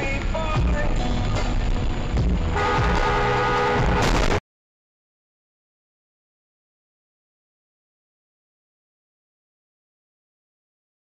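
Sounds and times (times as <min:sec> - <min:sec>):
background music: 0:00.0 - 0:04.4
road noise: 0:00.0 - 0:04.4
car horn long blast: 0:02.5 - 0:04.4.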